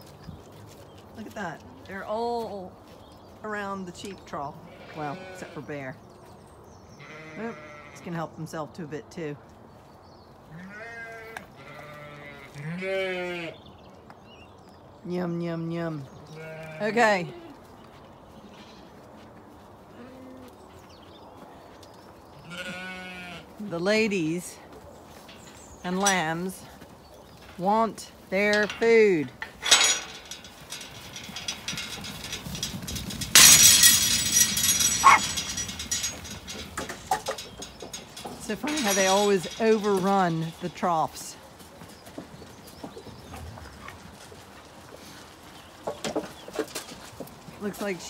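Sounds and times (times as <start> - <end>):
sheep bleating: 7.0 - 8.1, 10.5 - 13.6, 22.4 - 23.6
faint scattered sounds: 24.5 - 40.7.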